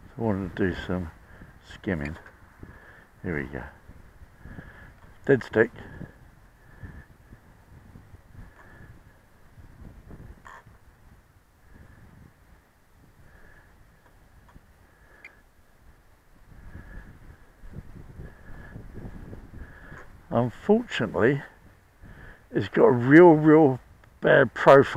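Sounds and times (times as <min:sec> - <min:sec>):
gusty wind on microphone: 0:00.0 - 0:23.0
bird calling faintly: 0:14.9 - 0:15.5.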